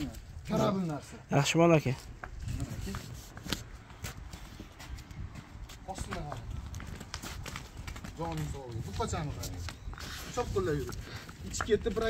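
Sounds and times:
cow hooves clopping on asphalt: 1.7 - 12.0.

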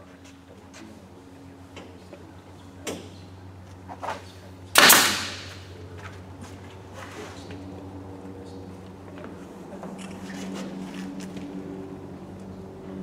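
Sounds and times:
nail gun shot with air rush: 4.8 - 5.7.

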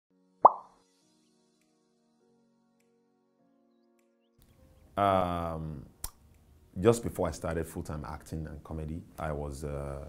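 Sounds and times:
soft background music: 0.1 - 10.0
upward-sweeping pop: 0.4 - 0.8.

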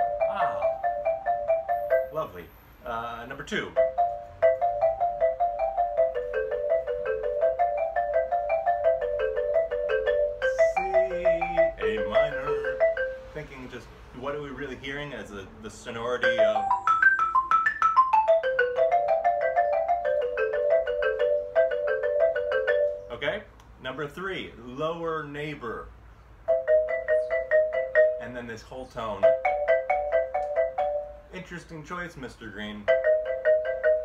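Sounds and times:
xylophone double stops: 10.3 - 13.4.

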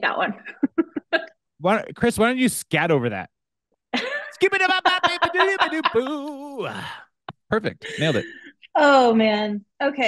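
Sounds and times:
person scat-singing: 6.0 - 7.0.

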